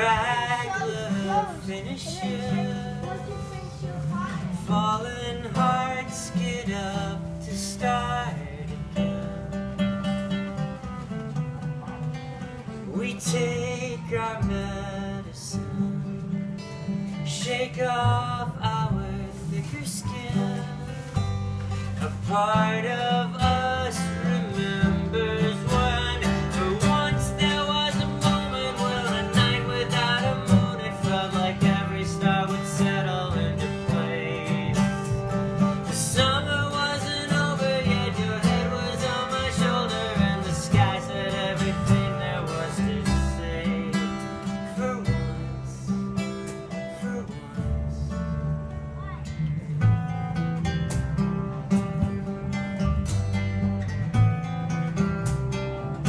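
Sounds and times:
plucked upright bass: 0.0 - 56.0
strummed acoustic guitar: 0.0 - 56.0.

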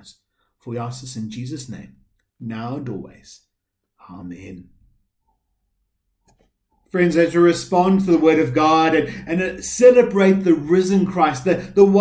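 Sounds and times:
man speaking: 0.0 - 4.8, 6.9 - 12.0.

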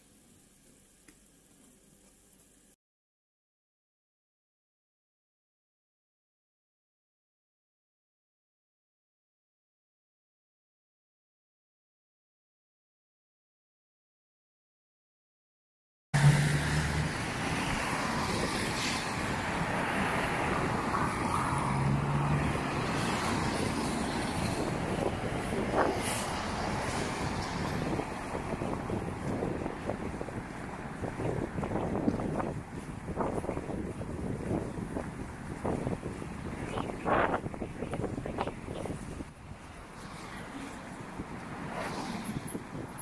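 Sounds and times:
car traffic noise: 16.2 - 43.0.

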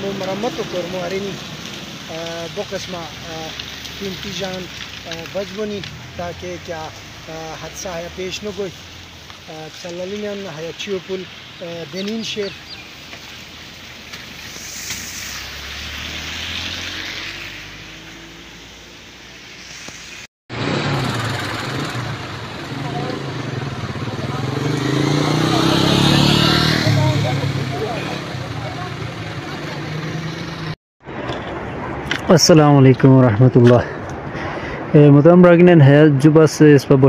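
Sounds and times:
traffic on wet road: 0.0 - 37.0.

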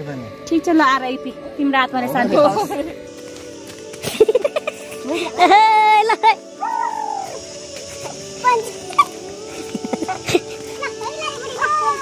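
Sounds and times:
background music: 0.0 - 12.0
children shouting and squealing: 4.4 - 12.0.

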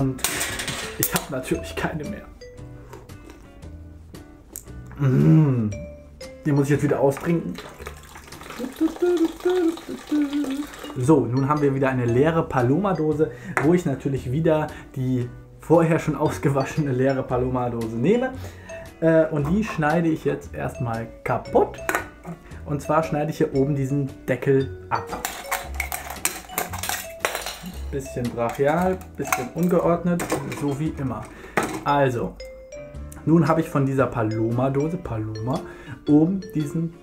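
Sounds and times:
man humming: 4.9 - 5.9, 8.6 - 10.9
drink pouring into plastic bucket: 7.5 - 11.0.

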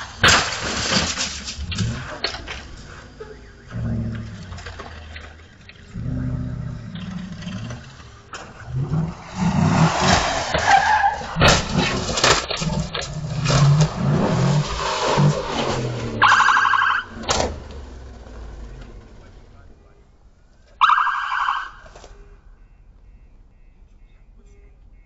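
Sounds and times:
tyre noise: 0.0 - 19.9
car engine revving: 0.0 - 22.0.

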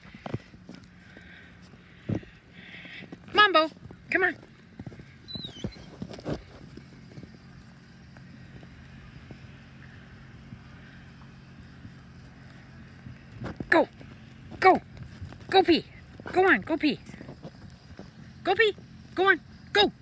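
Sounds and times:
footsteps crunching in snow: 0.0 - 19.1.

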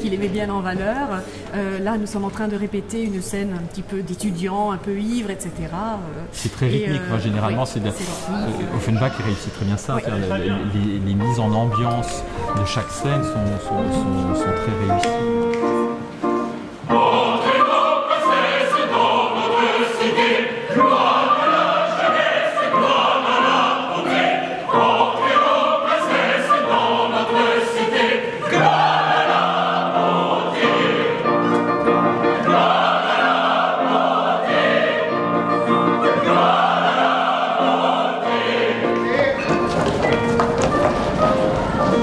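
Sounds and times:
opera chorus singing: 6.5 - 42.0.

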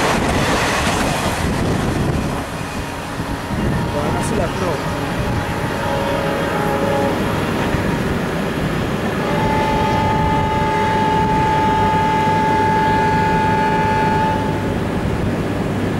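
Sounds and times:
low rumble of diesel trains: 0.0 - 15.9
locomotive horn blasts: 2.7 - 8.2, 9.2 - 14.8.

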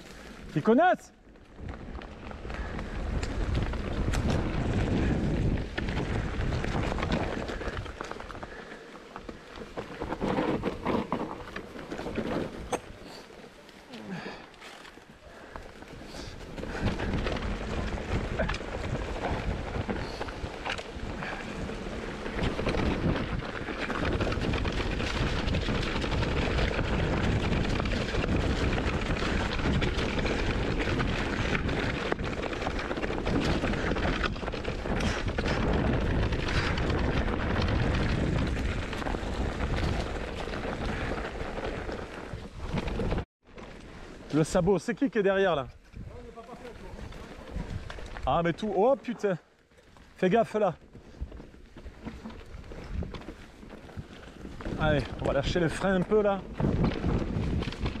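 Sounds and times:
bike rattling over dirt trail: 0.0 - 58.0
wind buffeting microphone: 1.5 - 8.8, 15.5 - 43.3, 45.7 - 48.8, 50.9 - 58.0.

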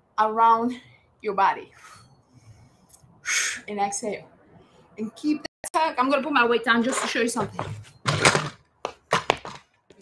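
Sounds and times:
dumbbells clattering on a mat: 7.4 - 9.7.

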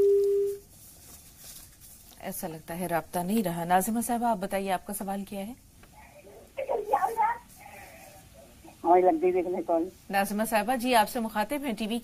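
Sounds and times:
telephone line beep: 0.0 - 0.6.

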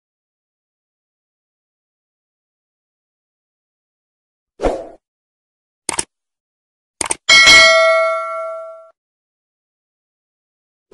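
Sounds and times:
mouse clicks: 5.9 - 6.1, 7.0 - 7.2
loud bell chime: 7.3 - 8.9.

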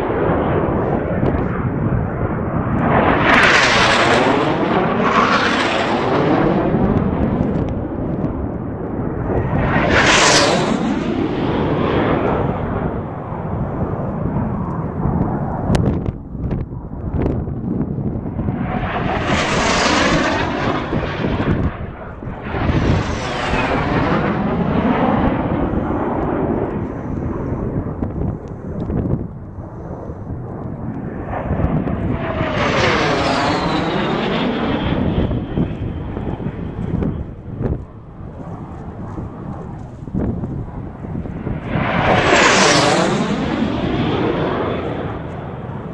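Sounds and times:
airplanes flying low past: 0.0 - 45.9.

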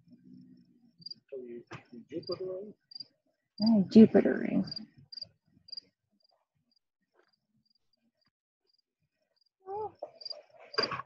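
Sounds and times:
faint cricket chirping: 0.0 - 11.0.

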